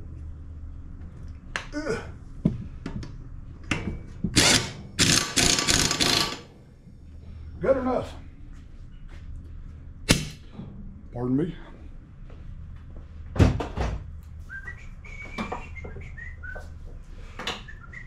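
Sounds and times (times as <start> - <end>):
pneumatic impact wrench rattling: 4.4 - 6.5.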